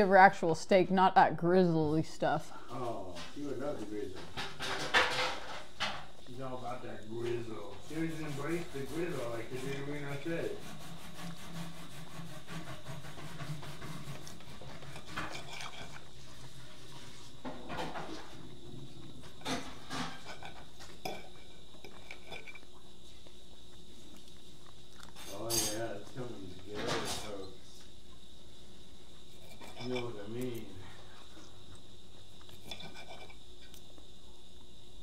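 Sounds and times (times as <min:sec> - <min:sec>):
knife and fork scraping a plate: 0:07.7 - 0:18.4, 0:19.2 - 0:22.7, 0:25.1 - 0:27.6, 0:29.3 - 0:31.0, 0:32.4 - 0:33.4.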